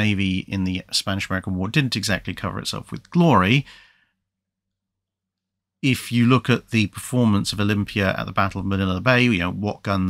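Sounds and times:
man speaking: 0:00.0 - 0:03.7, 0:05.8 - 0:10.0.

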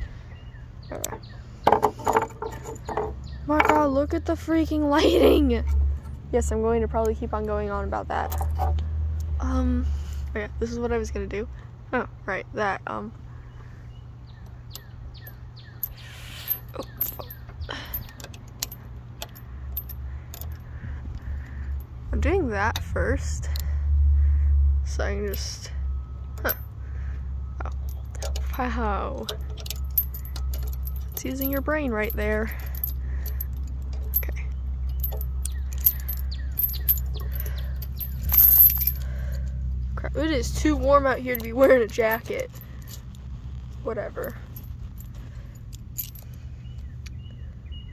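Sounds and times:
bird chirping: 0:00.1 - 0:04.0, 0:13.5 - 0:18.3, 0:34.5 - 0:37.8, 0:46.6 - 0:47.9
chain and carabiner jangling: 0:01.1 - 0:04.0, 0:14.7 - 0:20.8, 0:26.3 - 0:26.7, 0:27.7 - 0:39.6, 0:40.2 - 0:46.5.

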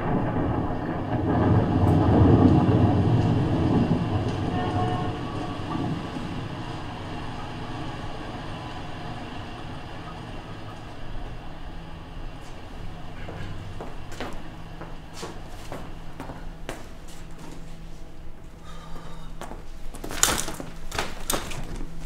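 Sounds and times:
faint steady hum: 0:00.0 - 0:22.0
loud low mechanical rumble: 0:00.0 - 0:22.0.

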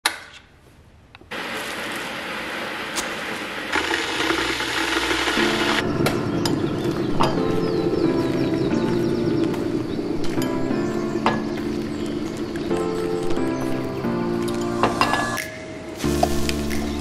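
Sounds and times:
kettle heating water: 0:01.3 - 0:05.8.

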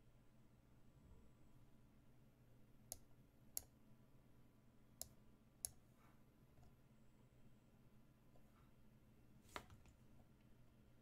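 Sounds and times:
computer mouse clicks: 0:02.9 - 0:03.8.

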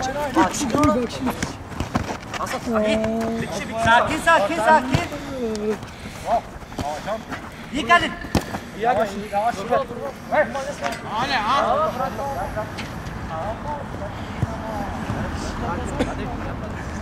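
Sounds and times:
men calling and shouting: 0:00.0 - 0:17.0.

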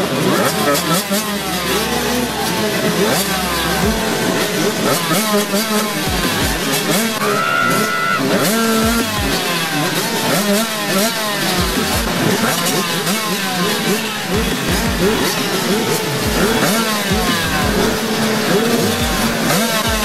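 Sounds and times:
motocross bikes revving: 0:00.0 - 0:20.0.

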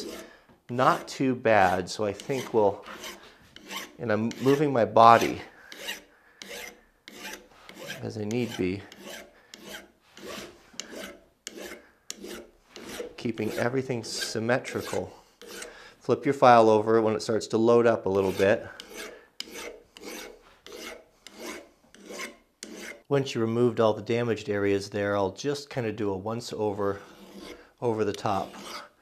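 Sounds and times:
file rasping on steel: 0:00.0 - 0:15.8, 0:18.1 - 0:23.1, 0:26.9 - 0:29.0.

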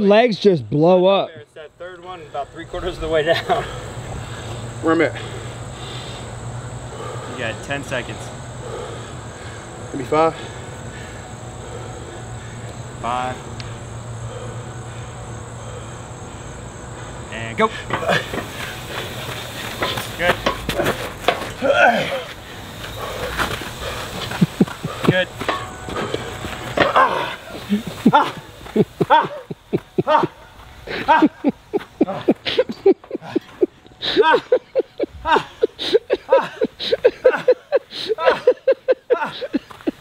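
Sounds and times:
man grunting and gasping: 0:21.6 - 0:22.3.

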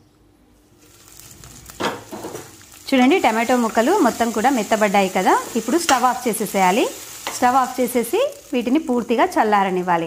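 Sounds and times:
vegetables sizzling in oil: 0:00.8 - 0:10.0.

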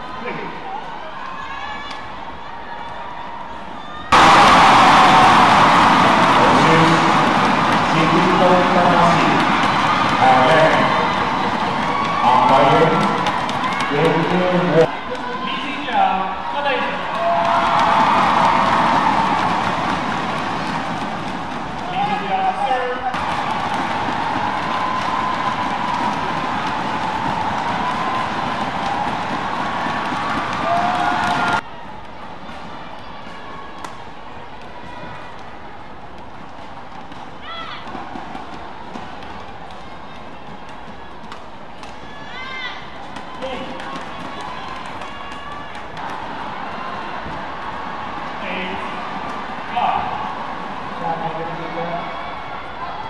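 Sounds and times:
arena crowd din: 0:00.0 - 0:53.0.

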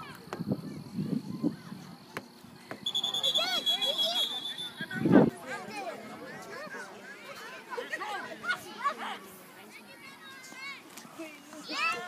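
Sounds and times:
chatter of voices calling out: 0:00.0 - 0:12.0
loud calls: 0:02.8 - 0:05.0.

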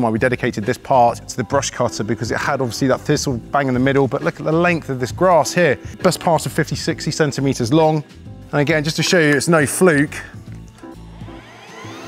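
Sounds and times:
background music: 0:00.0 - 0:12.0
electric motor whine: 0:10.8 - 0:12.0.

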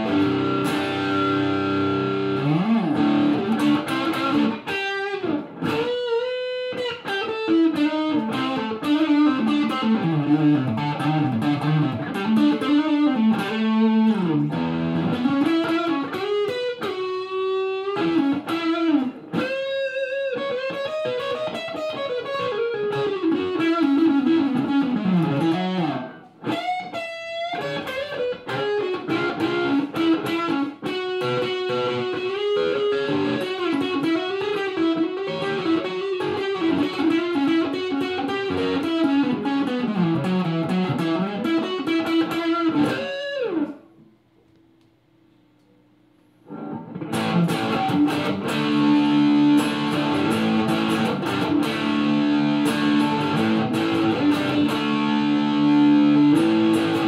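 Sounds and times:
distorted electric guitar lead: 0:00.0 - 0:44.1, 0:46.4 - 0:57.0.

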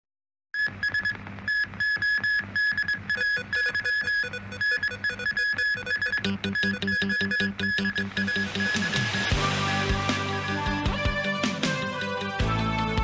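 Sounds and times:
repeated high beeping note: 0:01.5 - 0:09.4
electronic news theme music: 0:03.1 - 0:13.0
pulsing bass: 0:06.2 - 0:13.0.

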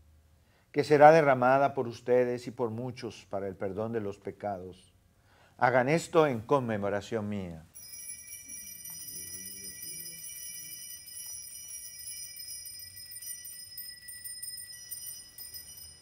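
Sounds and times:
altar bells ringing: 0:07.8 - 0:16.0.

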